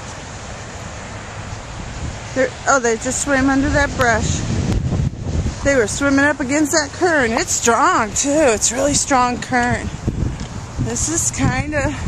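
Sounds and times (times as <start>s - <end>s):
creek rushing: 0.0s - 12.0s
wind rumbling on microphone: 0.0s - 12.0s.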